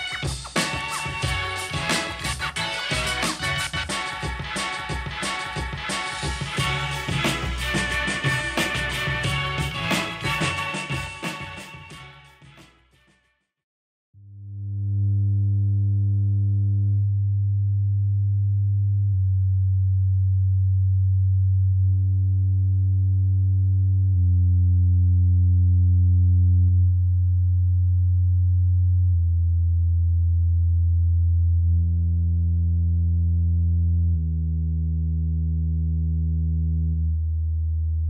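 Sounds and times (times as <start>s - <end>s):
low bass sine tones: 14.2s - 38.0s.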